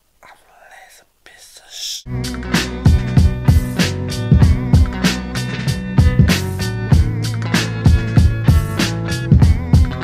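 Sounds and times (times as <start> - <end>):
man whispering: 0.1 - 2.1.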